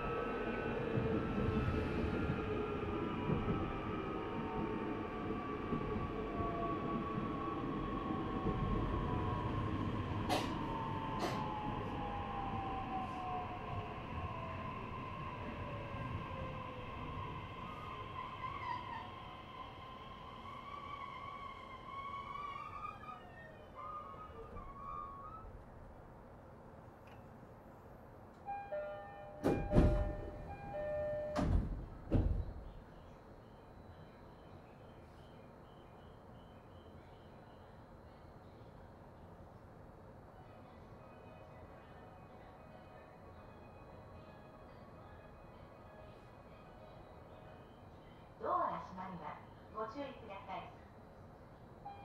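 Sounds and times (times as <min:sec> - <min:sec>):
train doors opening with thuds: 0:10.2 - 0:11.6, 0:28.7 - 0:33.0.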